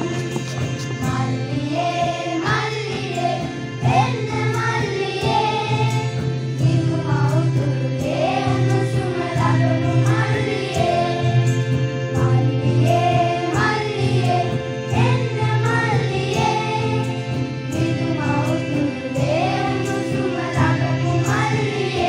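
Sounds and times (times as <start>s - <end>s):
boys' choir singing: 0.0s - 11.5s, 12.2s - 17.1s, 17.7s - 22.0s
instrumental accompaniment low notes: 0.0s - 22.0s.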